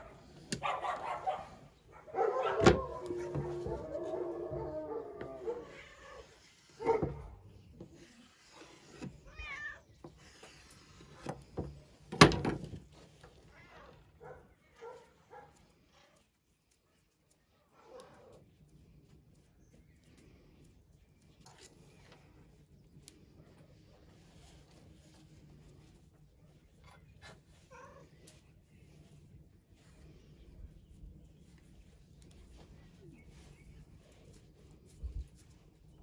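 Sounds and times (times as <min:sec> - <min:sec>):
cat meowing: 0:09.2 - 0:09.9.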